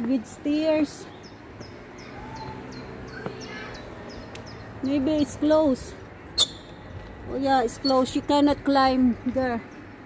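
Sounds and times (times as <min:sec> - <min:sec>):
small bird chirping: 0:06.4 - 0:07.0.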